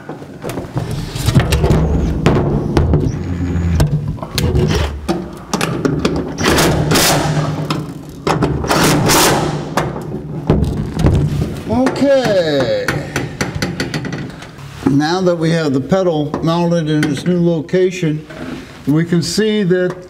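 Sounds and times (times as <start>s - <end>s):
knocks of parts being handled: 3.8s - 8.9s, 9.7s - 15.0s.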